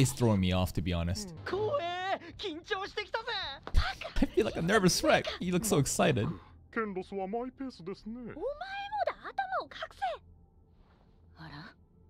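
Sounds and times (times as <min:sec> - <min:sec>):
characters speaking animatedly: 0:01.1 - 0:10.2.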